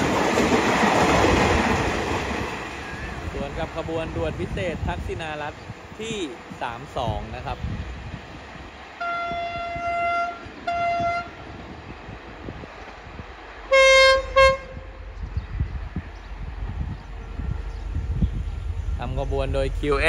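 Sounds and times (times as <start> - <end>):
diesel train rumble: 0.0 - 20.0
diesel train horn blasts: 9.0 - 11.6, 13.7 - 15.1.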